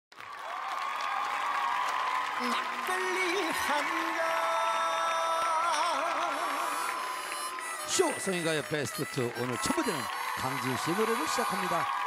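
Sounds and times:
audience applause: 0.1 - 12.0.

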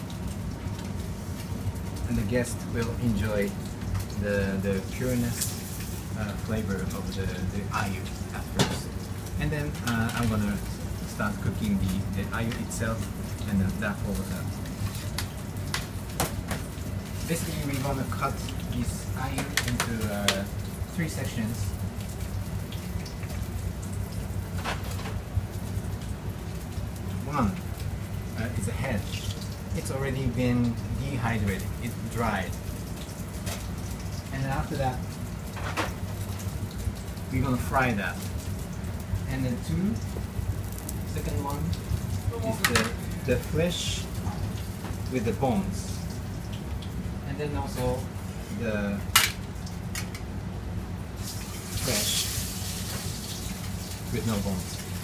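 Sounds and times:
kitchen hum and hiss: 0.0 - 55.0.

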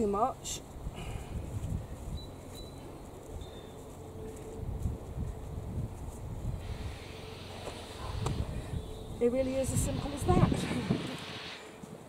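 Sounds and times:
wind buffeting microphone: 0.7 - 2.5, 4.5 - 11.6.

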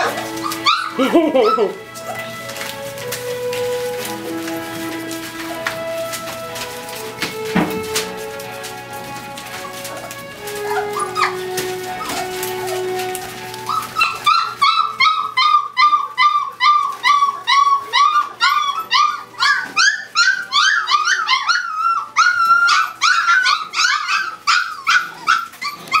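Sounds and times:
background music: 0.0 - 26.0
puppies yelping: 0.0 - 26.0.

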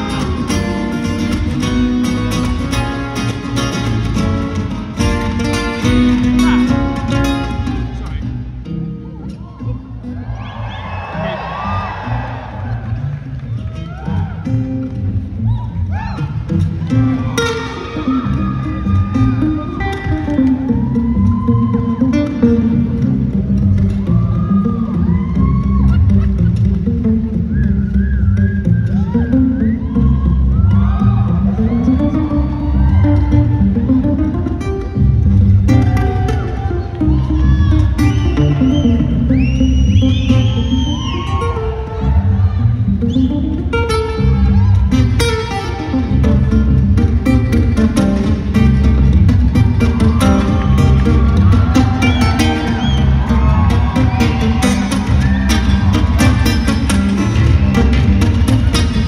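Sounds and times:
acoustic guitar through sound system: 0.0 - 59.0
audience whooping and cheering: 9.0 - 34.4, 35.7 - 46.6, 47.2 - 59.0.

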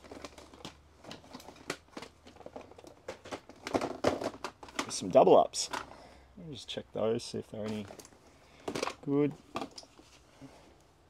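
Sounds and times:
plastic cases clattering: 0.0 - 6.0, 7.6 - 10.2.

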